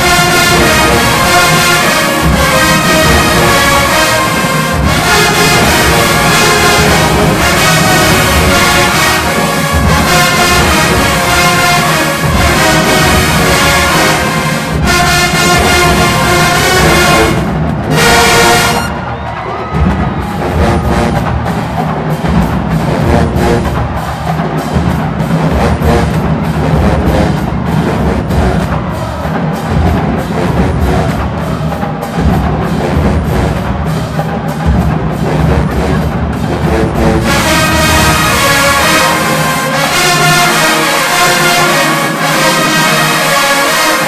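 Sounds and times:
drumline snares and bass drums: 0.0s - 44.0s
marching band brass: 0.0s - 44.0s.

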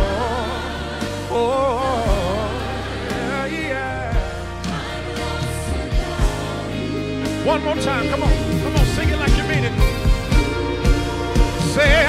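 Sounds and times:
keyboard chords over bass: 0.0s - 12.0s.

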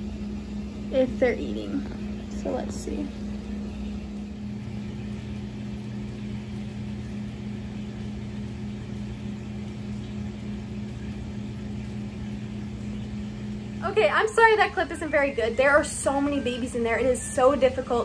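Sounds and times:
aquarium pump humming: 0.0s - 18.0s
lower hum tone: 0.0s - 18.0s.

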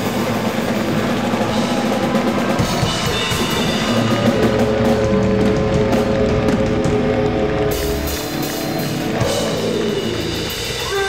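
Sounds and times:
rock band music: 0.0s - 11.0s.

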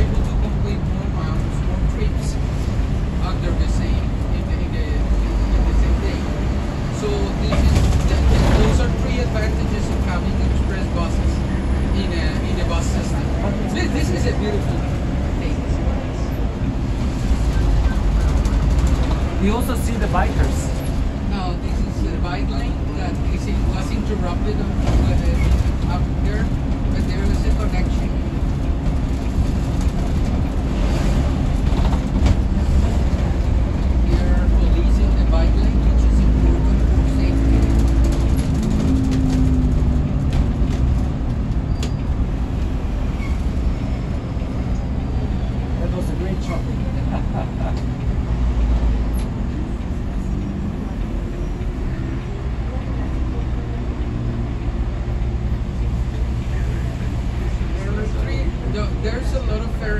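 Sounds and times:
bus engine running: 0.0s - 59.9s
road rumble: 0.0s - 59.9s.

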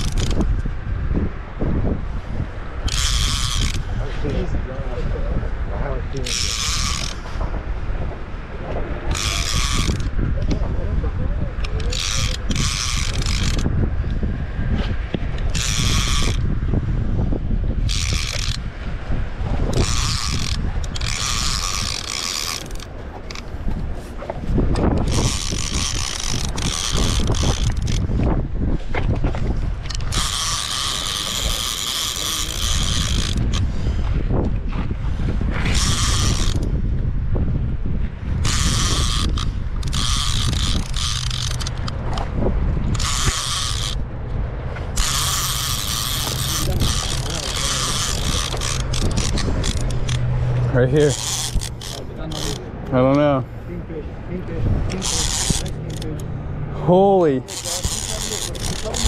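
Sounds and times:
fishing reel cranking: 0.0s - 0.6s, 2.8s - 4.4s, 6.2s - 7.4s, 9.1s - 10.7s, 11.6s - 14.2s, 14.8s - 16.6s, 17.8s - 18.7s, 19.6s - 23.6s, 24.7s - 28.3s, 29.8s - 34.1s, 35.5s - 36.9s, 38.4s - 44.1s, 44.7s - 53.5s, 54.8s - 59.0s
wind rumble on microphone: 0.0s - 59.0s.

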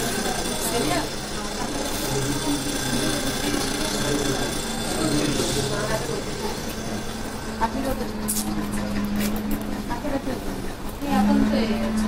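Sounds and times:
indistinct voices: 0.0s - 12.0s
steady low hum: 0.0s - 12.0s.

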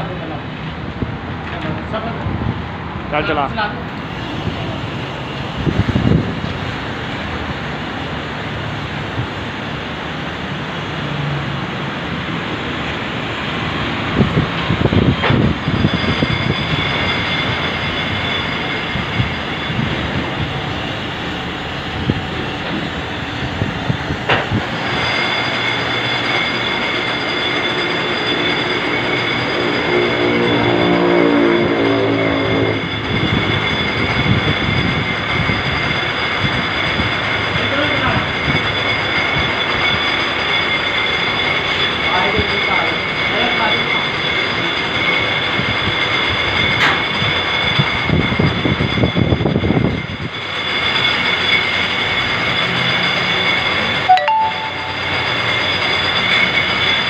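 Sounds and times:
high machine whine: 0.0s - 57.0s.

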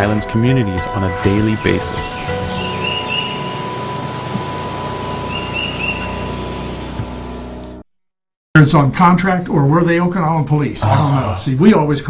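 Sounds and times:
outdoor ambient hiss: 0.4s - 7.8s
faint steady whine: 1.2s - 7.8s
short high chirps: 1.6s - 6.8s.

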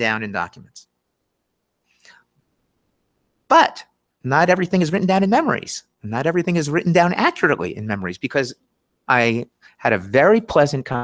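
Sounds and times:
faint breathy sound: 1.8s - 2.4s.

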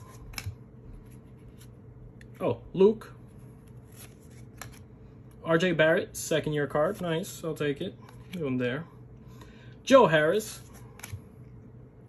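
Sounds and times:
trading cards snapping and rubbing: 0.0s - 2.4s, 3.6s - 4.9s, 10.6s - 11.3s.

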